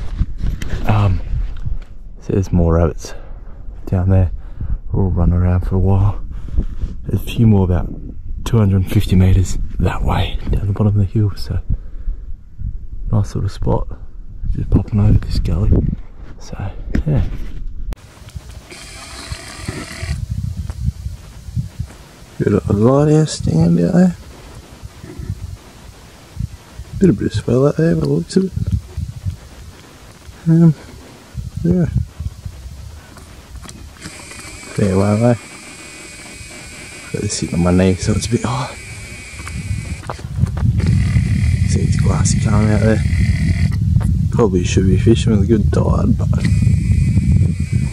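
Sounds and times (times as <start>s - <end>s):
wind buffeting microphone: 0.0s - 47.9s
hiss: 18.0s - 40.2s.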